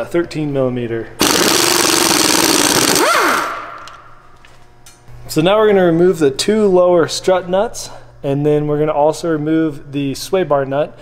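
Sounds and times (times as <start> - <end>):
pneumatic impact wrench hammering: 1.2 - 4.0
impact wrench whine spinning down: 1.2 - 4.2.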